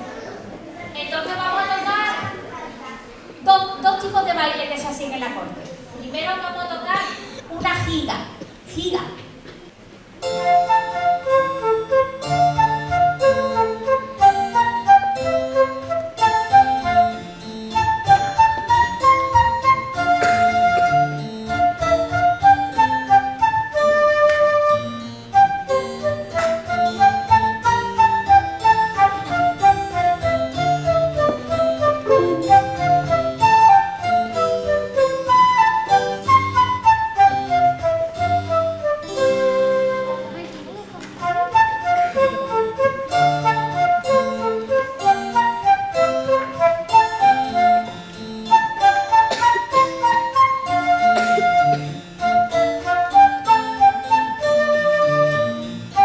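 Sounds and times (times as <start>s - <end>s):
keyboard accompaniment: 9.7s - 56.0s
flute melody: 10.2s - 40.6s, 41.2s - 56.0s.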